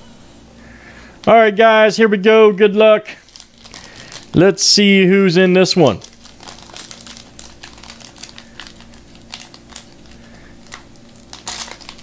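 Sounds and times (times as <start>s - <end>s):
faint steady hum: 0.0s - 12.0s
wrapper crinkling: 3.1s - 12.0s.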